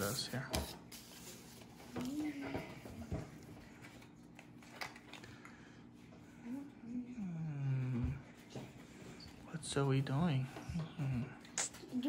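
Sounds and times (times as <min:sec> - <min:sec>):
person humming: 0:06.4 - 0:08.2.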